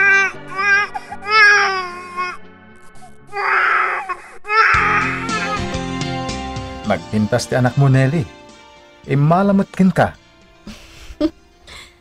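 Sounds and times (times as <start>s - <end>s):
background music with low notes: 0.0s - 3.6s, 4.8s - 12.0s
baby crying: 0.0s - 5.8s.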